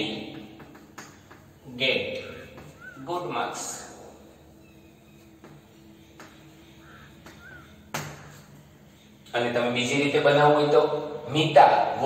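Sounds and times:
chalk tapping on a blackboard: 0:00.2 - 0:01.7, 0:05.4 - 0:06.4
faint crow cawing: 0:00.8 - 0:09.2.

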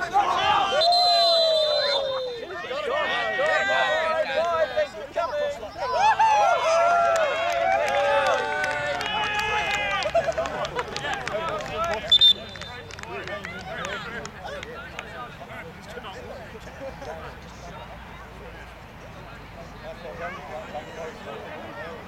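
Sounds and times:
players shouting: 0:00.0 - 0:15.2
referee's whistle blast: 0:00.7 - 0:02.5, 0:12.1 - 0:12.8.

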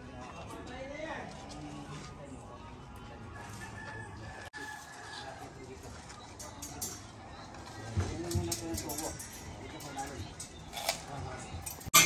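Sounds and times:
rooster crowing: 0:03.4 - 0:05.4.

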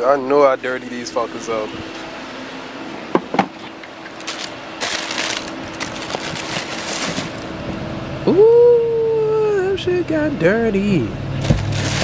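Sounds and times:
tissue paper crinkling: 0:04.2 - 0:07.4, 0:11.6 - 0:12.0.

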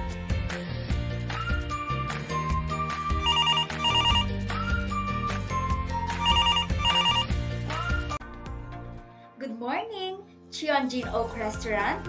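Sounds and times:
background music with steady beat: 0:00.0 - 0:09.4
telephone ringing: 0:03.2 - 0:04.4, 0:06.2 - 0:07.4.

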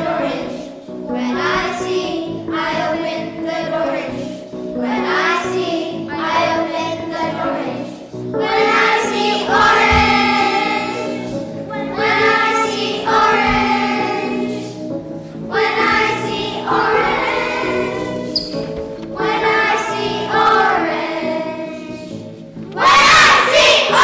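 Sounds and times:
children singing together: 0:00.0 - 0:24.0
musical accompaniment: 0:00.0 - 0:24.0.

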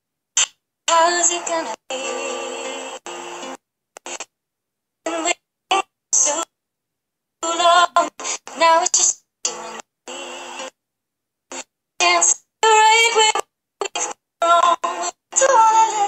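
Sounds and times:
woman singing: 0:00.9 - 0:03.0, 0:05.1 - 0:06.5, 0:07.4 - 0:09.6, 0:12.0 - 0:16.0.

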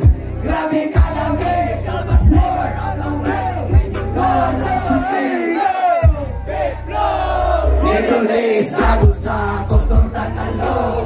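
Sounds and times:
crowd shouting and singing along: 0:00.0 - 0:11.0
live band music with vocals: 0:00.0 - 0:11.0.

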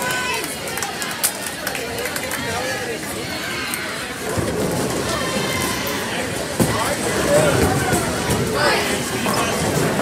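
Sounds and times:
indistinct voices: 0:00.0 - 0:10.0.

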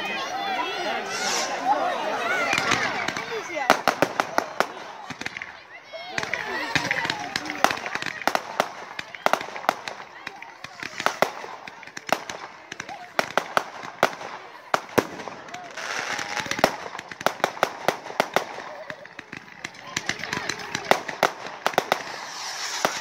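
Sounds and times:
fireworks bangs and pops: 0:01.1 - 0:23.0.

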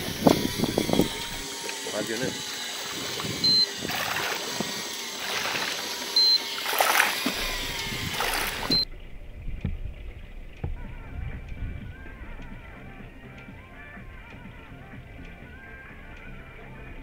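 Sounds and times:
sea water splashing: 0:00.8 - 0:14.0
short high beeps: 0:03.4 - 0:03.8, 0:06.2 - 0:06.5, 0:08.6 - 0:08.9
dull low rumble: 0:07.3 - 0:17.0.

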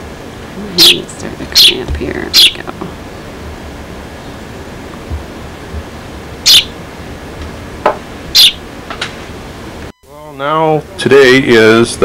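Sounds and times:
tape hiss: 0:00.0 - 0:12.0
sparrow chirping: 0:00.7 - 0:02.6, 0:06.4 - 0:06.8, 0:08.3 - 0:08.6.

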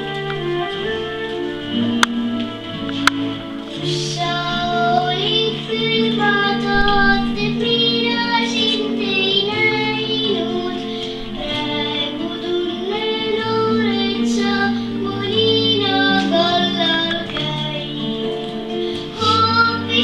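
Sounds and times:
instrumental backing track: 0:00.0 - 0:20.0
girl singing: 0:03.7 - 0:20.0.

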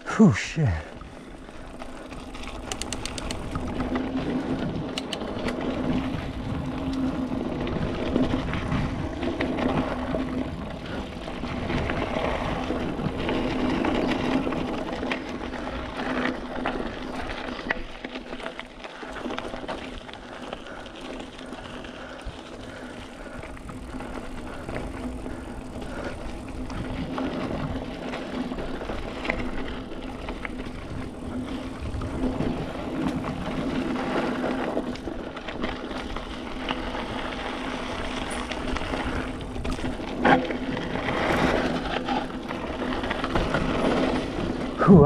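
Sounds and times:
mountain bike tyre and drivetrain noise: 0:00.0 - 0:45.0
bike clatter: 0:02.2 - 0:07.1.

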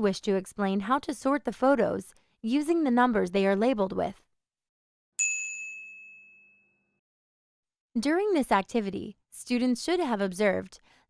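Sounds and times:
bright chime: 0:05.2 - 0:06.8.

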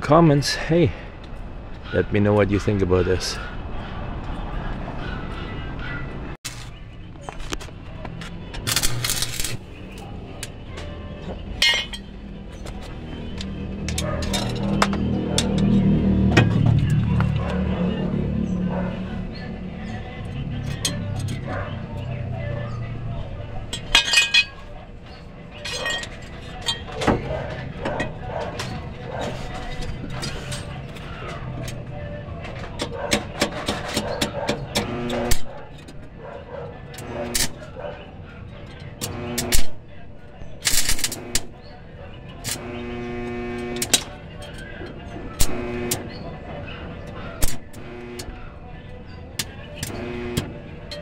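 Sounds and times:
background voices: 0:00.0 - 0:51.0
arc welder crackling: 0:08.6 - 0:09.7, 0:34.7 - 0:35.5, 0:37.0 - 0:37.6, 0:39.0 - 0:39.8, 0:40.7 - 0:41.6, 0:42.4 - 0:44.1, 0:45.4 - 0:46.1, 0:47.4 - 0:48.4, 0:49.8 - 0:50.6.

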